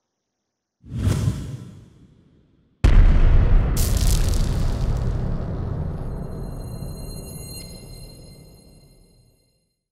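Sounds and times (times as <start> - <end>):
whoosh sound effect: 0.9 - 2.0.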